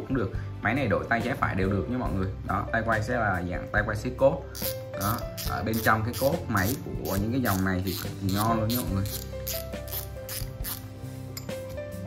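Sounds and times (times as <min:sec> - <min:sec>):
background music: 0:00.0 - 0:12.0
fishing reel knob clicking: 0:04.6 - 0:10.8.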